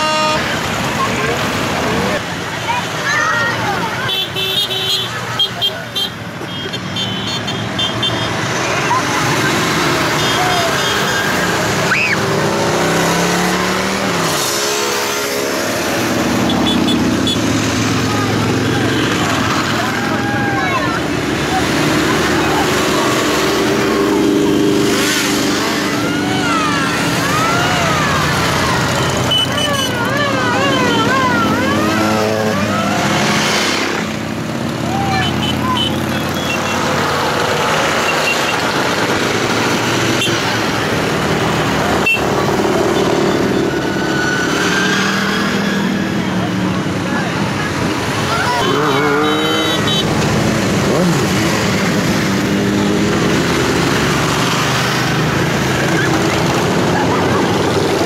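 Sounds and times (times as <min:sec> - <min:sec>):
crowd chatter: 0:00.0 - 0:58.0
motorcycle engines passing: 0:00.0 - 0:58.0.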